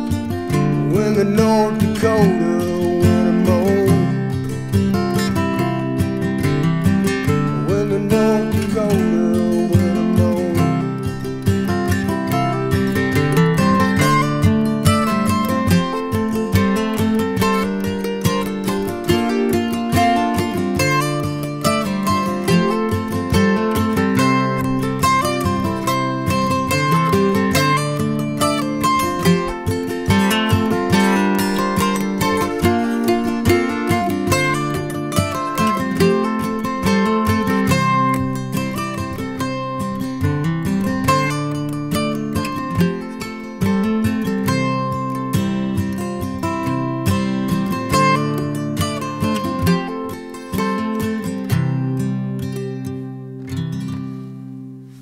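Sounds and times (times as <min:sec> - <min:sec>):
acoustic guitar strumming: 0:00.0 - 0:55.0
mandolin picking: 0:00.0 - 0:55.0.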